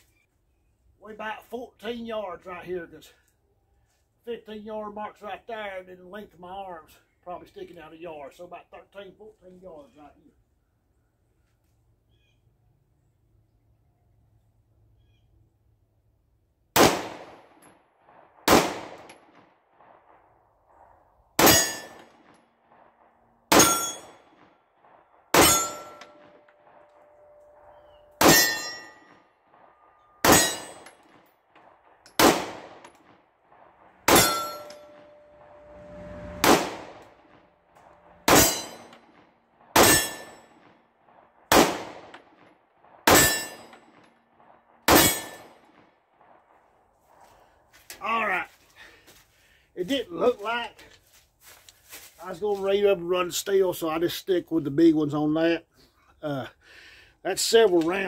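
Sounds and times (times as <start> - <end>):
pistol shots: 16.8 - 20.3, 21.4 - 35.5, 36.4 - 37.0, 38.0 - 46.5
steel target ringing: 21.4 - 22.1, 23.5 - 24.3, 25.3 - 31.1, 34.0 - 39.1, 39.8 - 40.5, 43.1 - 43.8, 44.9 - 45.5.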